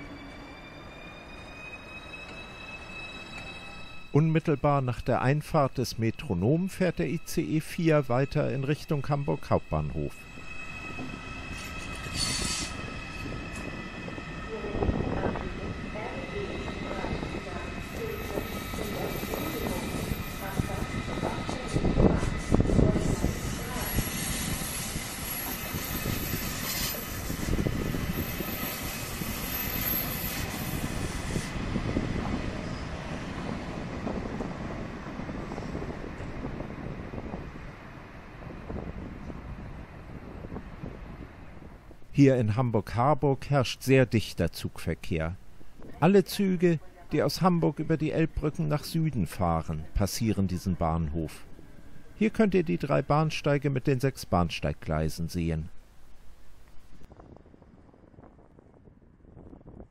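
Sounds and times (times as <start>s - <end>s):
train wheels rumbling on rail: 9.6s - 42.0s.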